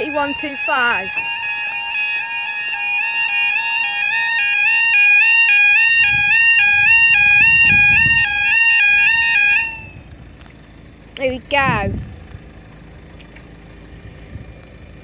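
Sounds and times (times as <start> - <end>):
level-crossing alarm warbling: 0.0 - 10.1
low rumble: 5.8 - 15.0.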